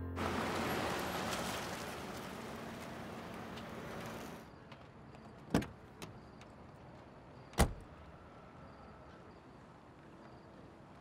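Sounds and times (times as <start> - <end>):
car door shutting: 7.6 - 7.8.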